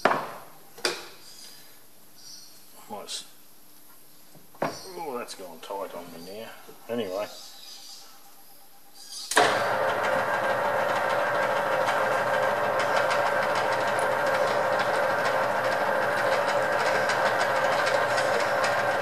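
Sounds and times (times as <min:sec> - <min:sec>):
metal lathe running with gear whine: 0:09.4 - 0:19.0.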